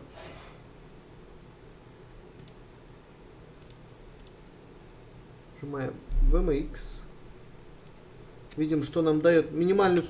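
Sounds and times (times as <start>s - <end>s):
computer mouse clicking: 2.4s - 2.6s, 3.6s - 4.4s.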